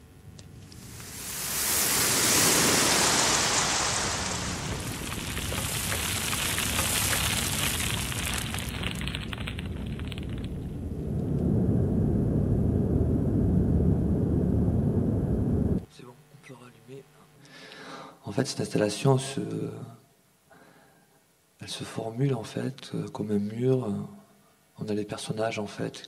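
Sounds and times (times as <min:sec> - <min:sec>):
low rumble: 0:00.0 - 0:15.8
rushing rain with crackling: 0:00.4 - 0:11.4.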